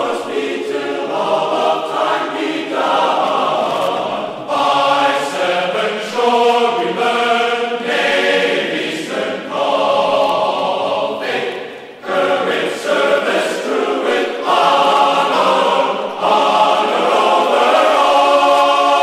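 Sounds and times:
choir singing held chords: 0.0s - 19.0s.

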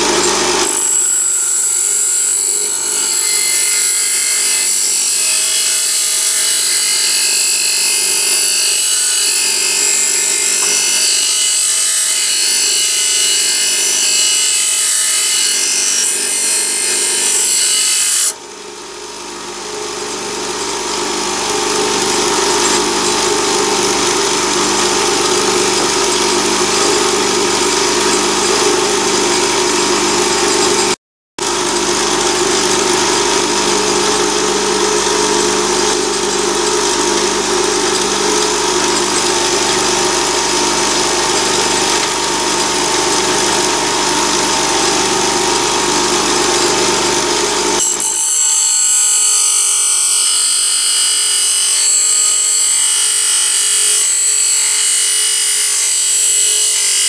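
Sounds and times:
metal against grinding wheel: 0.0s - 18.4s, 19.8s - 57.0s
bench grinder motor running: 0.0s - 57.0s.

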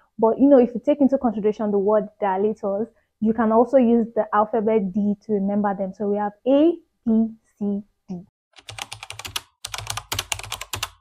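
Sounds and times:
keyboard typing clicks: 8.6s - 11.0s.

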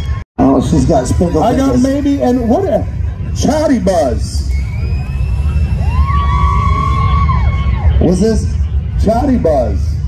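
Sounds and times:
steady low rumble: 0.0s - 10.0s
spectators whooping: 4.4s - 8.5s.

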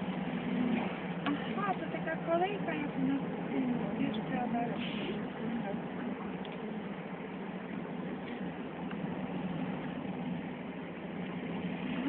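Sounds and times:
vehicle hum inside cabin: 0.0s - 12.0s.

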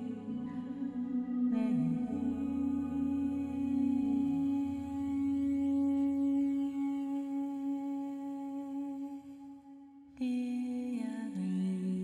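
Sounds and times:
droning film score note: 0.0s - 7.5s.

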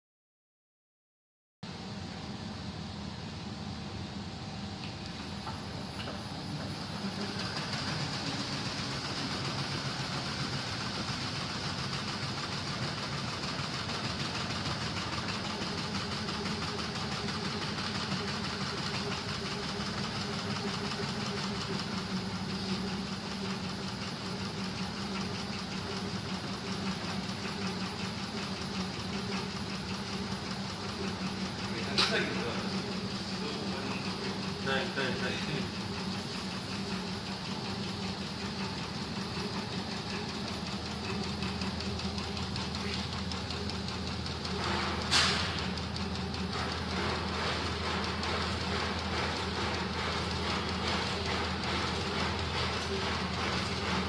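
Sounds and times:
vibration table humming: 1.7s - 54.0s.

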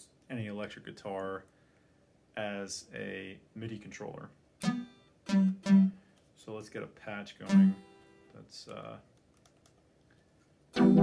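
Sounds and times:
synthesizer sustained note: 10.8s - 11.0s.

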